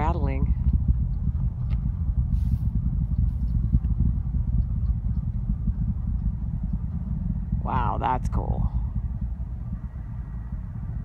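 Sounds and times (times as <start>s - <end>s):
rocket engines crackling rumble: 0.0s - 11.0s.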